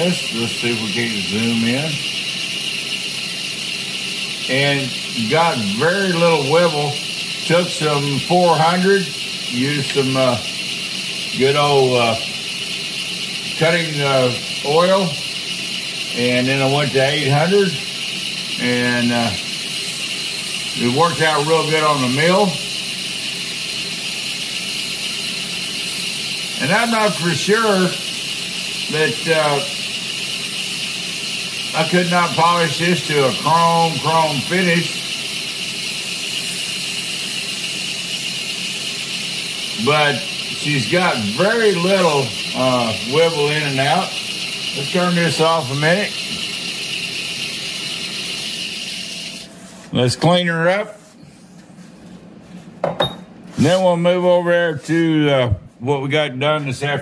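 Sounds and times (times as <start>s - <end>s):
milling machine whining: 0.0s - 50.2s
abrasive paper polishing spinning tube: 0.0s - 52.7s.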